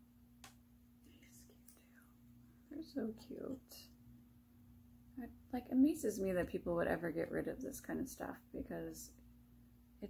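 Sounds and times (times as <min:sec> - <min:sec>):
faint steady hum: 0:00.0 - 0:10.0
soft breathy sounds: 0:01.0 - 0:02.8
woman speaking: 0:02.7 - 0:04.0, 0:05.2 - 0:09.2.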